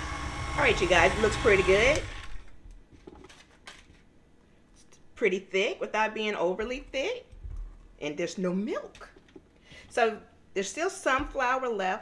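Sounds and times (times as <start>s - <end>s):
stand mixer motor winding down: 0.0s - 2.5s.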